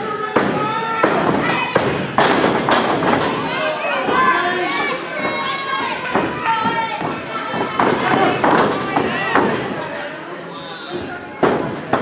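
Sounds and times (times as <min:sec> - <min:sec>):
crowd shouting: 0:00.0 - 0:02.2, 0:02.8 - 0:11.6.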